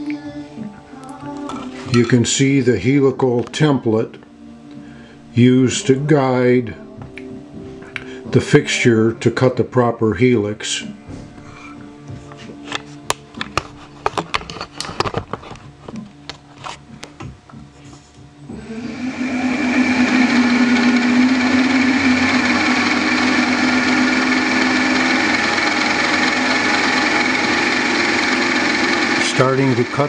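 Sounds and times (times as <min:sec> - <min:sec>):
milling machine motor humming: 0:18.5 - 0:30.0.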